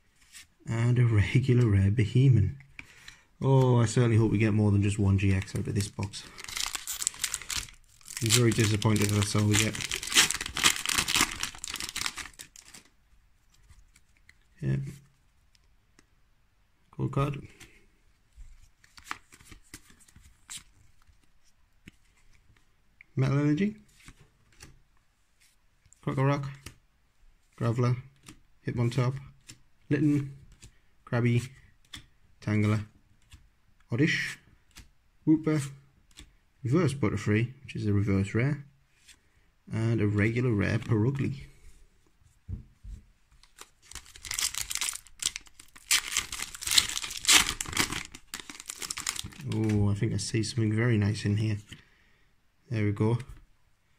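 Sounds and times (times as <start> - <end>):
trading cards shuffled in hands: 5.3 - 12.9, 18.4 - 22.6, 42.8 - 49.8
foil wrapper tearing and crinkling: 6.3 - 12.9, 43.4 - 49.7.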